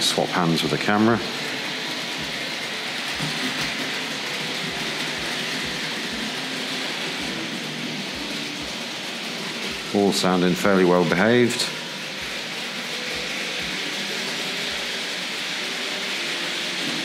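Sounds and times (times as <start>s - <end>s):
model trains whirring on track: 0.0s - 17.0s.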